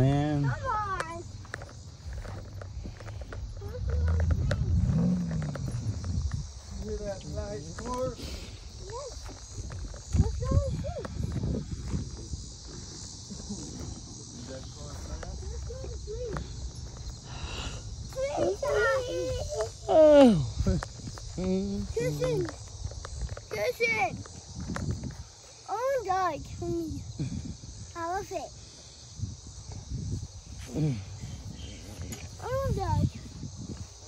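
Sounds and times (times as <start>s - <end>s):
low microphone rumble: 1.2s - 7.7s
young child calling out: 18.1s - 20.4s, 32.4s - 33.2s.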